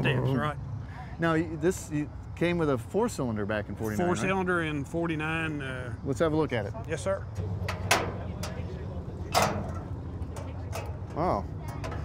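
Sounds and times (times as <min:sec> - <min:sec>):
low steady hum: 0:07.2 - 0:12.0
metal clunk: 0:07.4 - 0:08.7, 0:09.3 - 0:12.0
hood latch clicks: 0:09.3 - 0:11.0.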